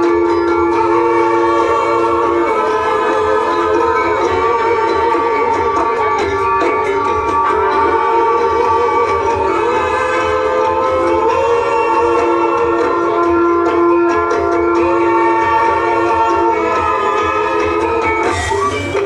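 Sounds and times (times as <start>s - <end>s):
drums: 0.0s - 19.0s
gamelan music: 0.0s - 19.0s.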